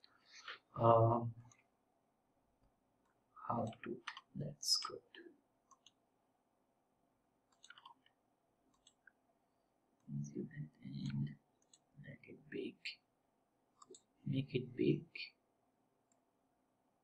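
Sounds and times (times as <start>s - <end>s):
computer mouse clicks: 5.7s - 6.0s, 7.5s - 9.2s, 11.6s - 11.9s, 13.8s - 14.1s.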